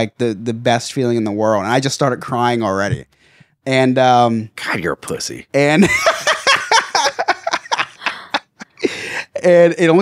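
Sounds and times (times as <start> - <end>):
people laughing: 5.8 - 9.0.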